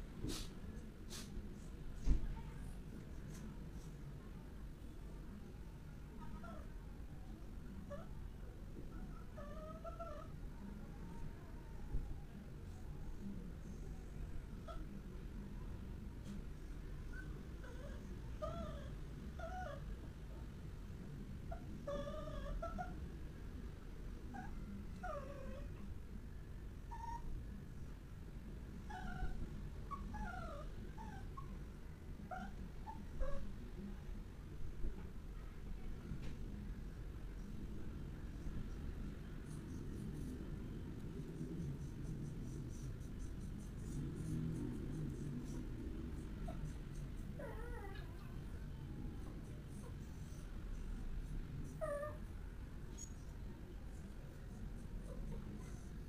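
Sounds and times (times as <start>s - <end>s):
low room rumble: 0.0s - 56.0s
pet whining: 8.9s - 12.4s, 17.1s - 19.9s, 21.5s - 23.0s, 24.3s - 25.9s, 26.9s - 27.4s, 28.8s - 31.6s, 32.2s - 33.5s, 41.4s - 52.3s, 54.0s - 56.0s.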